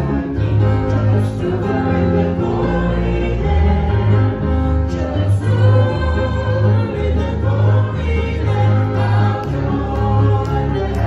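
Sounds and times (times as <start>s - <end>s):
woman and man singing a hymn: 4.9s - 11.0s.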